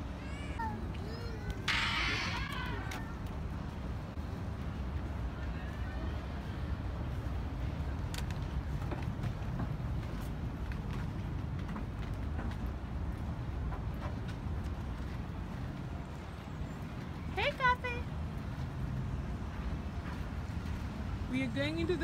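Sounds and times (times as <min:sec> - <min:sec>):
footsteps on gangway: 0:07.0 - 0:21.4.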